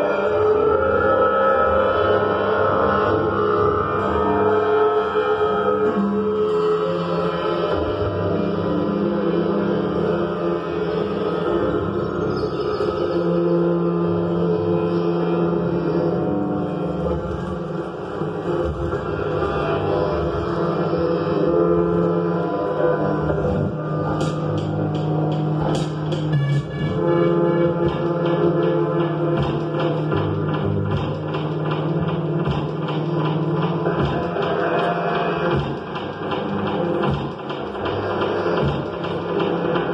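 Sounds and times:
electronic drone music: 0.0 - 39.9.

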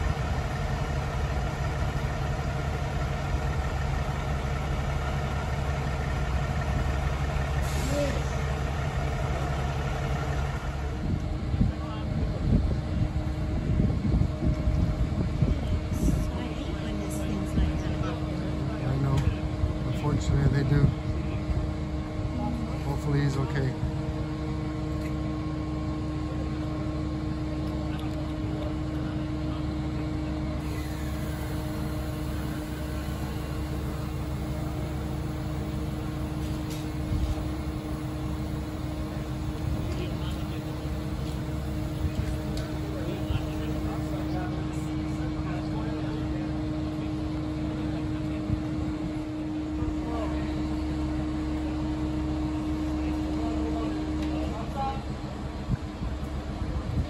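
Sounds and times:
diesel engines idling: 0.0 - 56.9
high hiss: 30.6 - 39.3.

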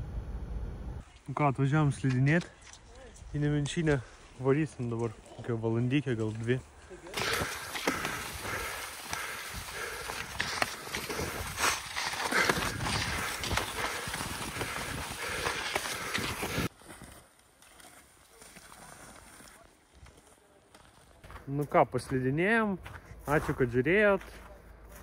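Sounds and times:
faint outdoor ambience: 0.0 - 25.0
ski and pole scrapes and clicks: 7.1 - 21.2
skis running on snow: 7.1 - 22.2.

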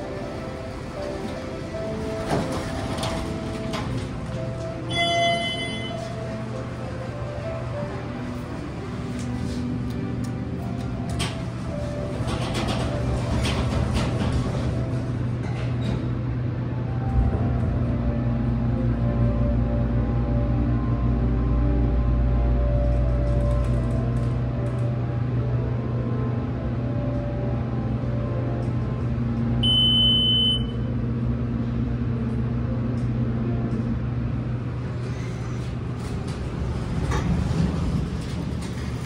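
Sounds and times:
elevator pump motor humming: 0.0 - 39.0
deep rumble: 6.2 - 29.9, 30.6 - 39.0
high electronic beep: 29.6 - 30.8.

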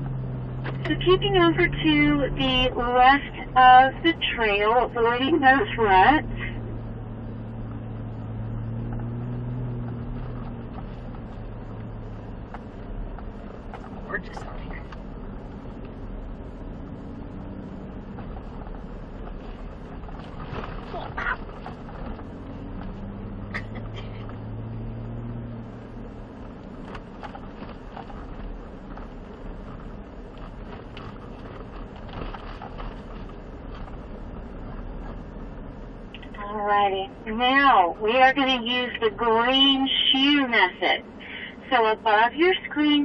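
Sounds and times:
engine and tire drone: 0.0 - 43.0.

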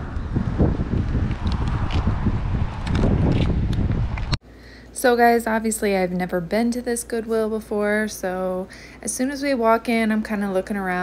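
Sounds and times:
stroller wheels rolling on asphalt: 0.0 - 4.4
wind buffeting microphone: 0.0 - 4.4.

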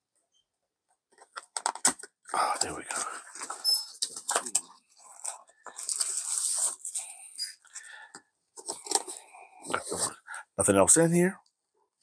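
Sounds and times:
plastic bag crinkling: 4.3 - 7.1.

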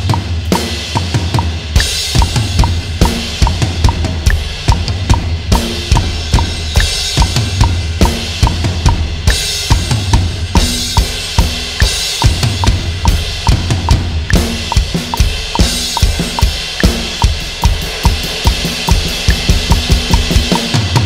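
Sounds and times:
metronome click: 0.0 - 0.3, 1.0 - 5.3, 5.9 - 9.0, 10.8 - 20.8
electronic drum kit groove: 0.0 - 21.0.

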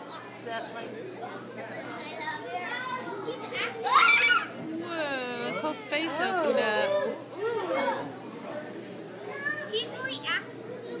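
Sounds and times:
children's voices and chatter: 0.0 - 11.0
high-pitched children's calls: 2.4 - 4.6.

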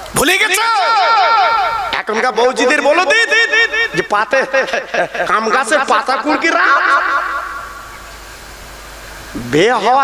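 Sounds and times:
steady background hiss: 0.0 - 10.0
man speaking over public address: 0.1 - 7.6, 9.4 - 10.0.

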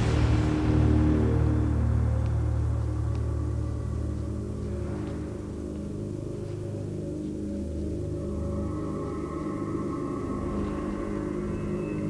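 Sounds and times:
low sustained droning chord: 0.0 - 12.0.

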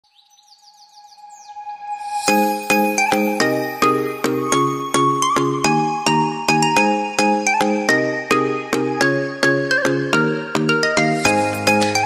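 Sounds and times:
falling bird-like chirps: 0.0 - 4.0.

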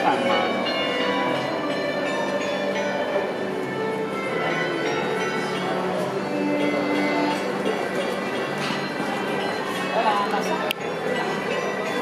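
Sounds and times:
clock bells chiming tune: 0.0 - 12.0.

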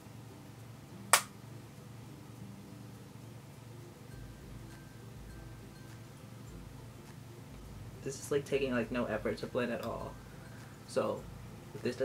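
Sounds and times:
sharp click: 1.1 - 1.3.

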